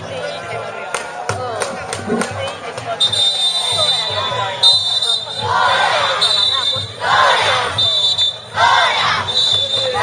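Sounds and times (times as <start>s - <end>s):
shrill whistle blasts: 3.0s - 10.0s
people shouting in chorus: 5.3s - 7.8s, 8.4s - 10.0s.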